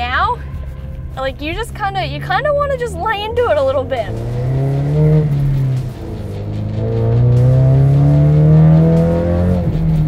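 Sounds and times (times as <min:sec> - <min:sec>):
car engine accelerating hard: 0:01.3 - 0:10.0.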